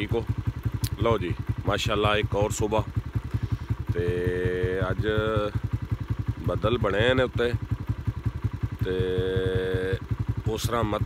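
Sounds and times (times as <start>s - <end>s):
engine chugging: 0.0s - 11.0s.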